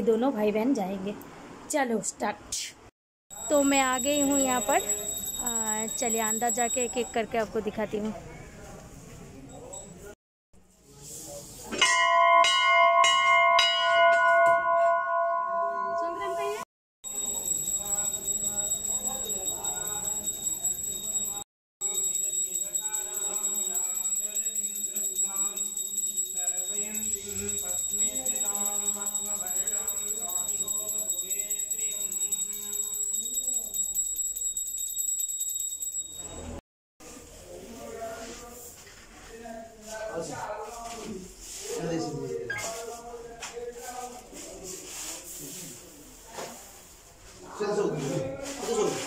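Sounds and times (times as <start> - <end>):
hand bell rung rapidly: 3.3 - 7.4, 17.0 - 36.6.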